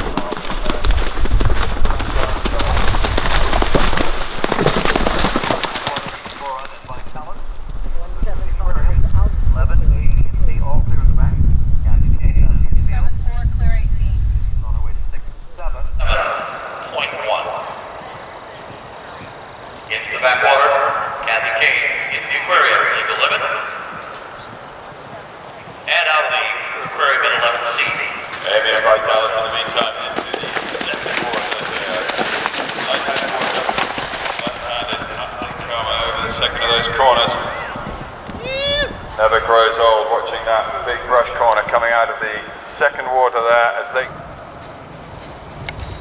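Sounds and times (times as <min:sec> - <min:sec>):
background voices talking: 0:00.0 - 0:03.2, 0:05.8 - 0:44.2
horse hoofbeats on turf: 0:00.0 - 0:08.1
wind rumbling on microphone: 0:00.0 - 0:43.3, 0:43.9 - 0:46.0.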